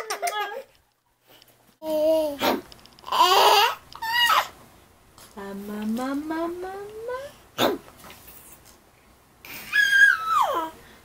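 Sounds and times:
baby squealing: 3.1 - 4.6, 9.5 - 10.8.

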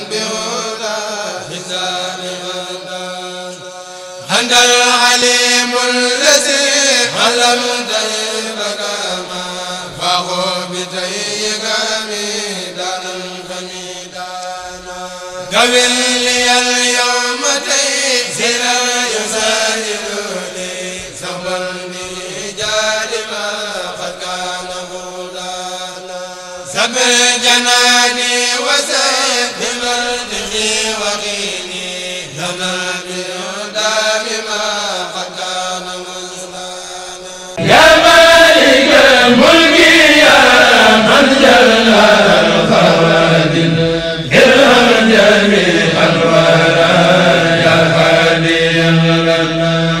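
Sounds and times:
men chanting through microphones: 0.0 - 50.0.

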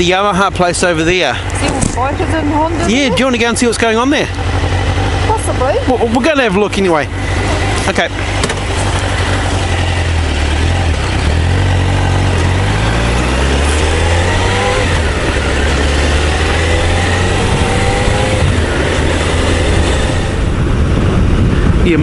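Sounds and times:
motorcycle engine accelerating: 0.0 - 22.0
wind noise on microphone: 13.6 - 22.0.

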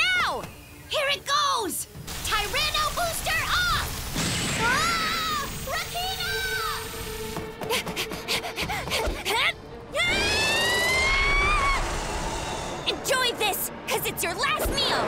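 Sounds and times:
long drawn-out shout: 9.9 - 12.4.

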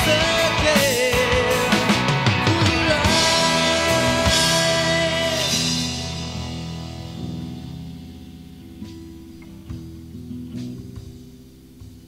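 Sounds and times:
rock band music: 0.0 - 12.0.

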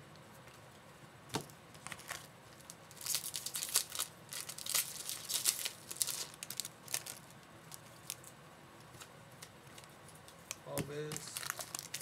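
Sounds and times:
foil wrapper tearing and crinkling: 1.8 - 7.3, 11.1 - 12.0.

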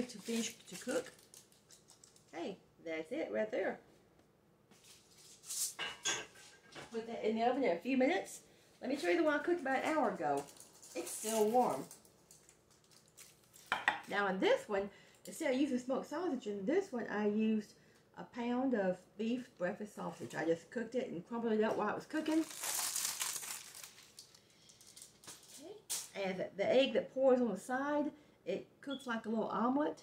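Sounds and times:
aluminum foil rustling: 0.0 - 2.4, 4.8 - 5.8, 8.8 - 13.9, 22.1 - 26.2
dish knocking on counter: 13.7 - 14.1.

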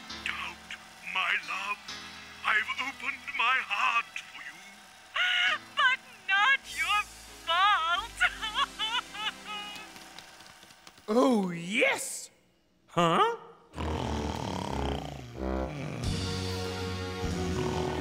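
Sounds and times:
background music: 0.0 - 10.5, 13.7 - 18.0
wobbling voice-like sounds: 13.0 - 16.2.

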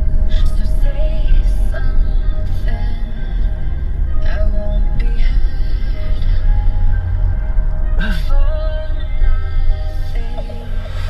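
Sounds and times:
music on car radio: 0.0 - 11.0.

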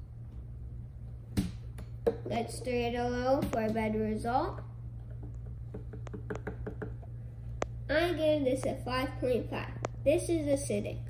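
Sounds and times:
stick clicking against cup: 5.1 - 7.0.

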